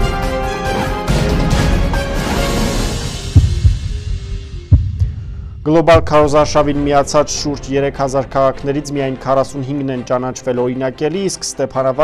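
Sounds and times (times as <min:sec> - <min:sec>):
news theme music: 0:00.0 - 0:12.0
deep bass thuds: 0:03.1 - 0:07.6.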